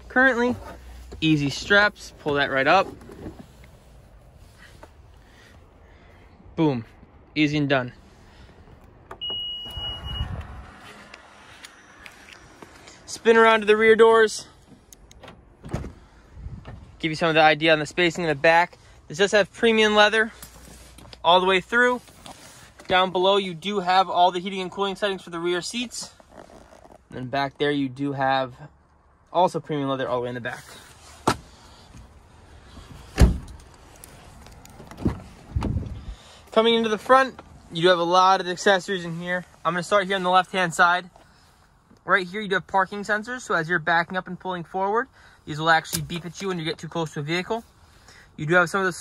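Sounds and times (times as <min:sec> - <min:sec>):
high warning beep: 0:09.2 - 0:10.5
car door shutting thud: 0:15.2 - 0:16.0, 0:33.1 - 0:33.6.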